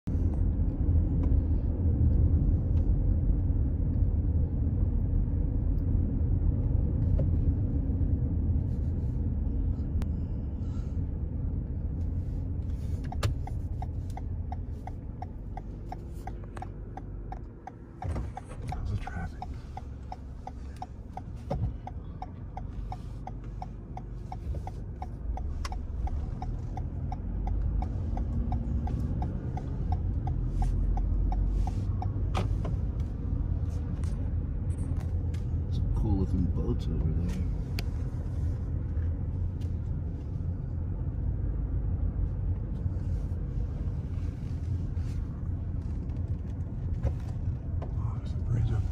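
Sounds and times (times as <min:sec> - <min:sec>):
car engine rumble and road noise: 0:00.0 - 0:48.9
turn signal ticking: 0:11.1 - 0:48.9.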